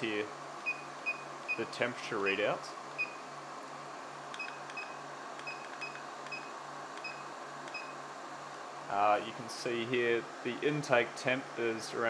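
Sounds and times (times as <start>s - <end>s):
cooling fans whirring: 0.0s - 12.0s.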